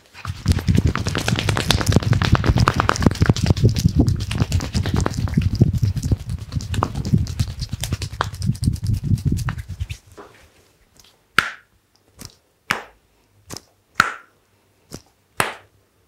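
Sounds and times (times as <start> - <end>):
palm slaps on skin: 0.5 - 5.5, 11.4 - 14.3, 14.9 - 15.7.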